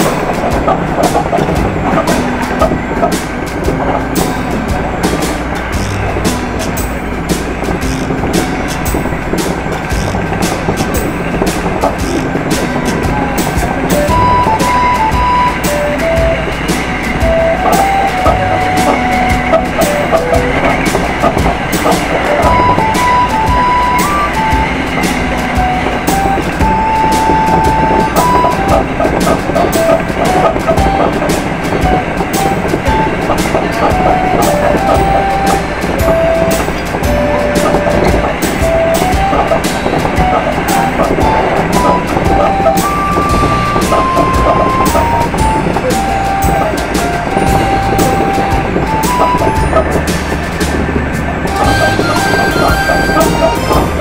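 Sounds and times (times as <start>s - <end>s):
simple background melody: 0.0s - 54.0s
train wheels on rails: 0.0s - 54.0s
wheels clicking over track: 0.0s - 54.0s.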